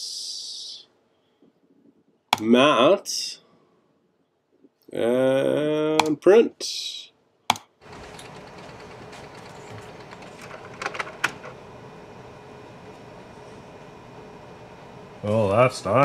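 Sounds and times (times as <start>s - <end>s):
faint room hum: 0.0s - 16.0s
sharp click: 7.5s - 7.7s
photo card handling clicks and rustles: 7.8s - 11.6s.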